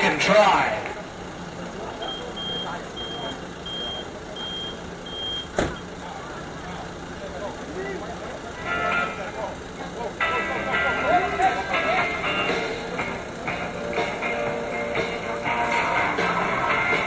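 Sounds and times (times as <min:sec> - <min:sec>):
reversing alarm beeping: 0:02.0 - 0:05.9.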